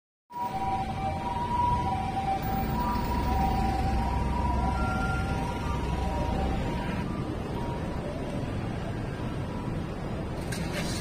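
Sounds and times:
low rumble of road traffic: 0:00.3 - 0:11.0.

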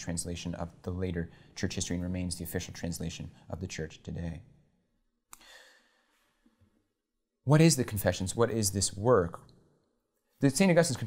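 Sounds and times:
man's soft breath: 0:05.3 - 0:06.8.

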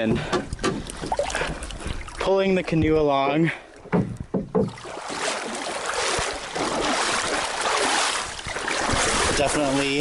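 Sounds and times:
paddle and hull knocks: 0:00.0 - 0:03.1, 0:03.8 - 0:10.0
water splashing: 0:00.0 - 0:04.0, 0:04.6 - 0:10.0.

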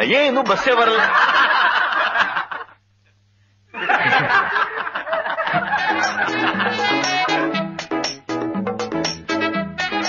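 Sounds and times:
group of people laughing: 0:00.6 - 0:02.8, 0:03.7 - 0:07.5
bouncy background music: 0:05.5 - 0:10.0.

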